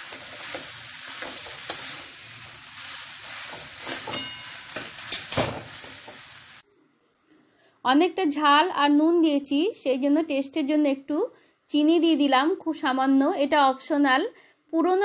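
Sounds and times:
metal spatula scraping pan: 0:00.0 - 0:06.3
food sizzling in oil: 0:00.0 - 0:06.6.

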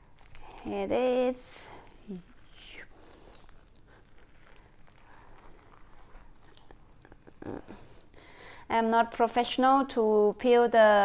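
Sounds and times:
fruit rind tearing and crackling: 0:00.0 - 0:08.2.

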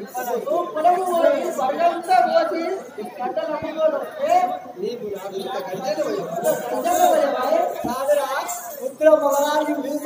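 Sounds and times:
voices talking over one another: 0:00.0 - 0:10.0.

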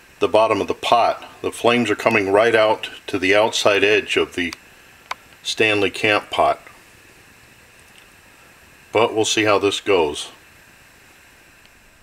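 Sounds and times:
burner hissing: 0:00.0 - 0:12.0.

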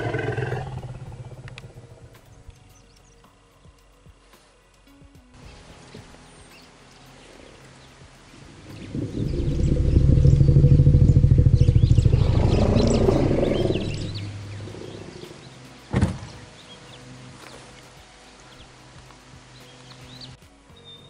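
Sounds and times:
elephant low rumbling call: 0:00.0 - 0:02.2, 0:08.4 - 0:15.6.

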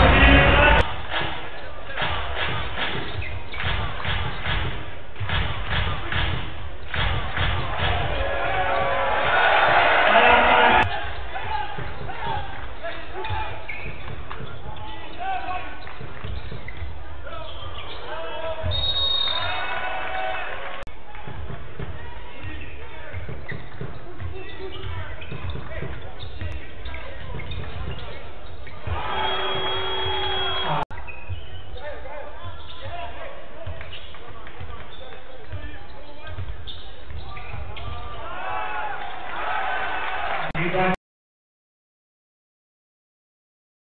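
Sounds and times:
crowd noise: 0:00.0 - 0:41.0.

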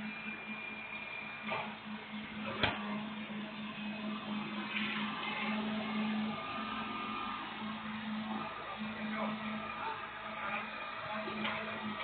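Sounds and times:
truck mechanical hum: 0:00.0 - 0:12.0.

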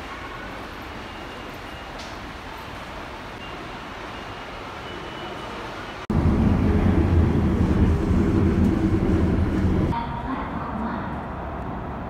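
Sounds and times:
train carriage rumbling on track: 0:00.0 - 0:12.0.

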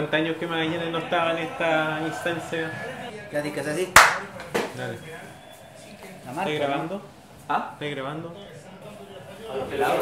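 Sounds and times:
sharp hand clap: 0:03.9 - 0:04.8.

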